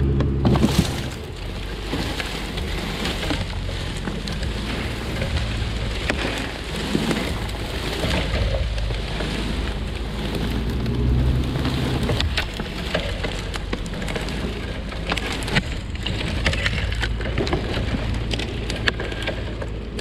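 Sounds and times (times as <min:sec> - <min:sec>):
logs dragging over dry leaves: 0:00.0 - 0:20.0
low rumble: 0:00.0 - 0:20.0
twigs snapping and crackling: 0:00.0 - 0:20.0.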